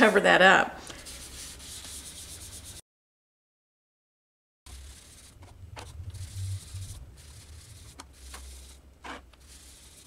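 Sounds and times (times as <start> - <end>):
low rumble: 4.7 - 8.8.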